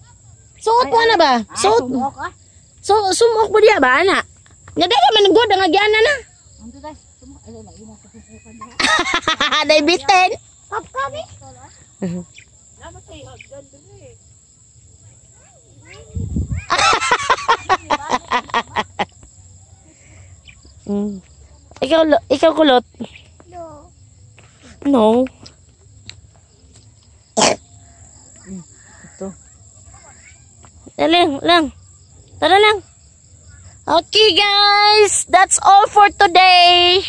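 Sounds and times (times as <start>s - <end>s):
crickets chirping: 0.0s - 37.0s.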